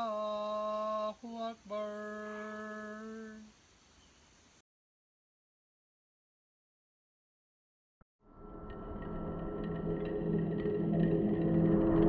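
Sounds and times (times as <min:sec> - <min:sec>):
man chanting call to prayer: 0:00.0 - 0:03.5
faint hiss: 0:00.0 - 0:04.6.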